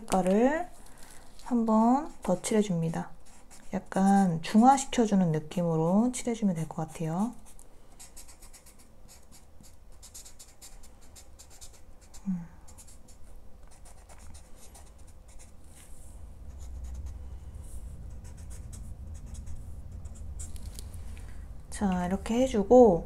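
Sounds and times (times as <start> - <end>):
marker scratching on paper: 1.9 - 4.9, 7.0 - 15.9, 16.5 - 20.7.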